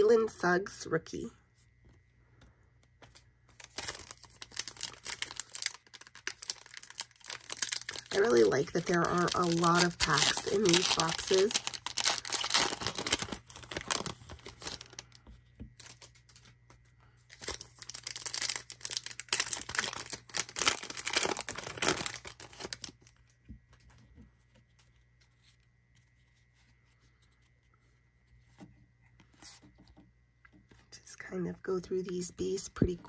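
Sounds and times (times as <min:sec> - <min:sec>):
foil wrapper tearing and crinkling: 0:03.5 - 0:15.2, 0:15.8 - 0:16.5, 0:17.3 - 0:23.2.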